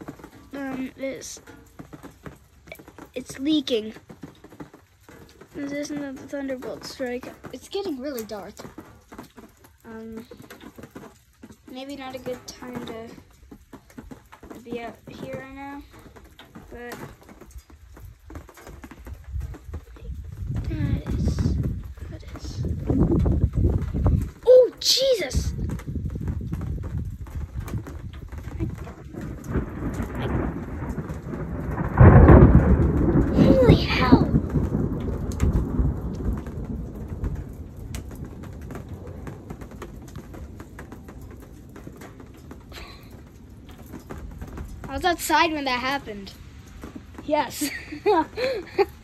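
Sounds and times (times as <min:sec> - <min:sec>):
rain falling: 0:00.0 - 0:49.0
thunder rumbling: 0:00.0 - 0:49.0
thunder crack: 0:14.5 - 0:49.0.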